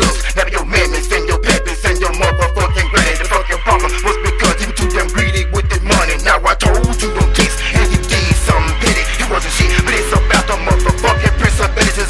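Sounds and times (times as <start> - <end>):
rapping over a beat: 0.0 - 12.0.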